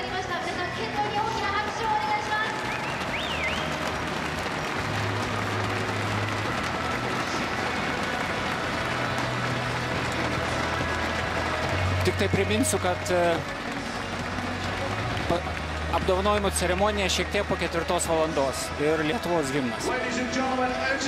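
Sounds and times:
crowd cheering and applauding: 0.0 - 21.0.

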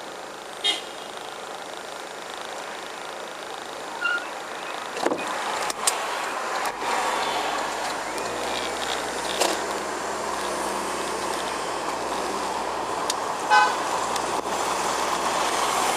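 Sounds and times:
road noise inside car: 0.0 - 15.9.

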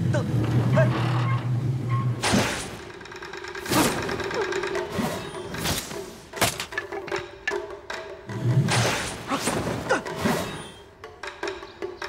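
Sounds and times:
mechanical whirring and rattle: 0.0 - 8.7.

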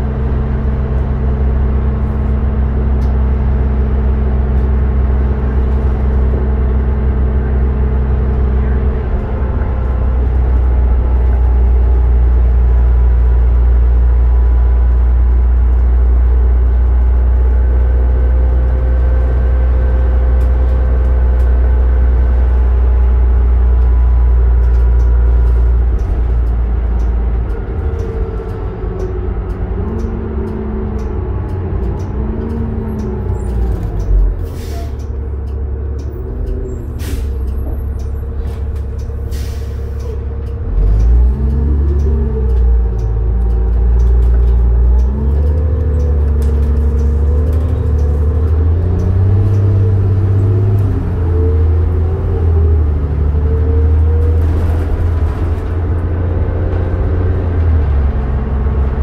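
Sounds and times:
bus engine drone: 0.0 - 59.0
air brakes hissing: 34.4 - 35.1, 36.8 - 37.6, 38.4 - 40.2.

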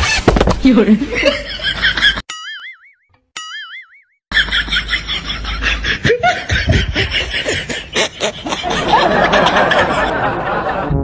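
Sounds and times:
laughter: 0.9 - 2.3, 4.3 - 11.0
background music: 10.1 - 11.0.

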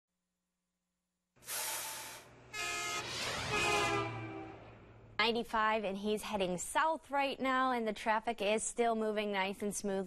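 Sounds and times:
horn-like synthesized chords: 2.4 - 5.2
whoosh: 2.9 - 5.2.

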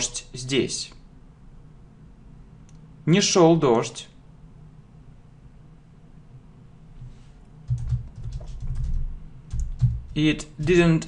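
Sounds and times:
computer keyboard typing: 7.6 - 11.0.

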